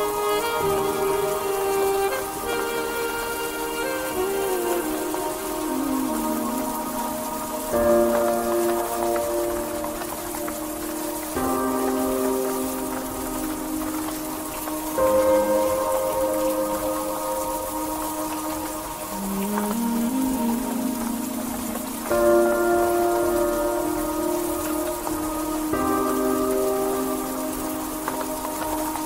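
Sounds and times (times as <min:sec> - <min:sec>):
ambient music sustained chords: 0:00.0 - 0:29.0
steady rain-like hiss: 0:00.0 - 0:29.0.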